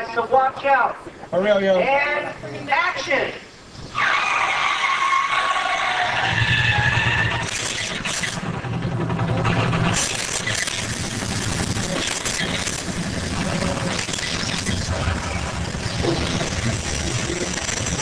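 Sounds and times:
tires screeching: 3.9 - 8.4
sharp cracks and bangs: 5.2 - 18.0
engine running loud and low: 6.2 - 18.0.

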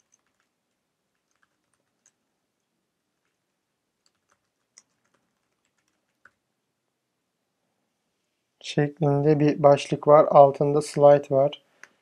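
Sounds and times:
computer keyboard keystrokes: 1.2 - 2.2, 4.0 - 6.4.

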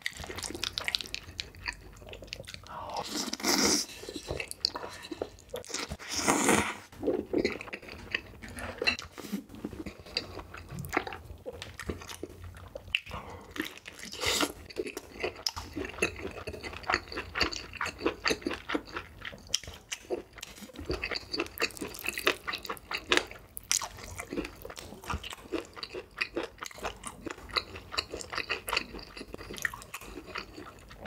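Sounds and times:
close chewing: 0.0 - 6.1, 7.0 - 31.0.

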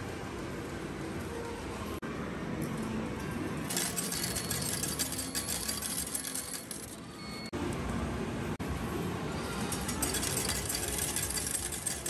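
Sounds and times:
coins clattering into tray: 3.7 - 7.0, 9.6 - 12.0.

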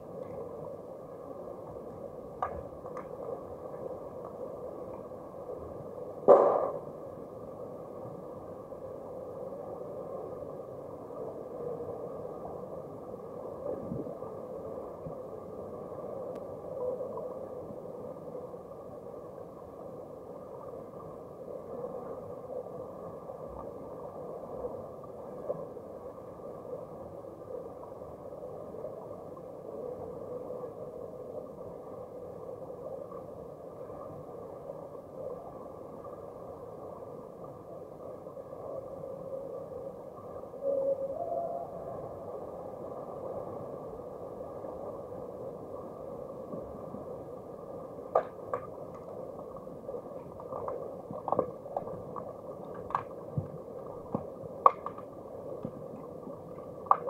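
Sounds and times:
muffled underwater pool noise: 0.0 - 57.0.

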